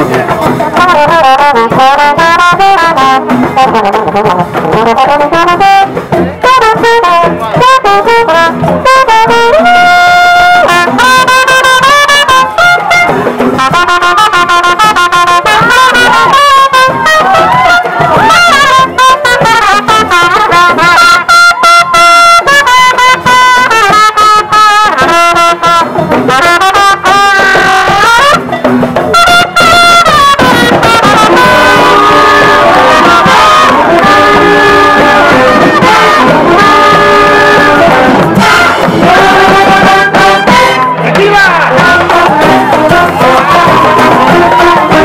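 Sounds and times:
brass band playing: 0.0 - 45.0.

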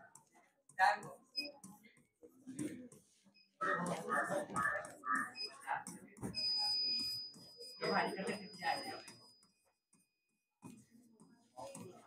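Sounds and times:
short electronic beep: 6.3 - 9.3.

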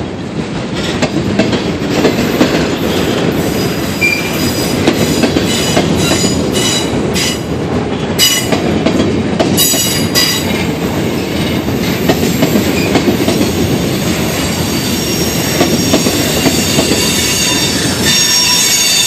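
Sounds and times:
train wheels rumbling on rails: 0.0 - 19.0
high-pitched wheel squeal: 14.6 - 19.0.

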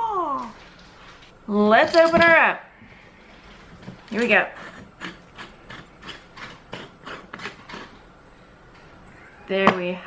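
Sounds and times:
metal lid grinding on glass jar: 4.2 - 8.0.

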